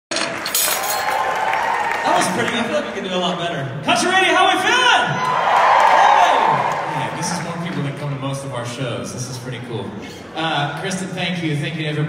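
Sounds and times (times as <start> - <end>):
crowd applauding and cheering: 0.1 - 3.4, 4.2 - 8.2.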